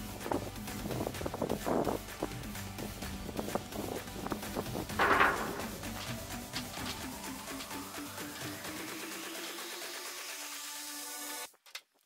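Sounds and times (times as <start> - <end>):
background music with steady beat: 0.0 - 11.5.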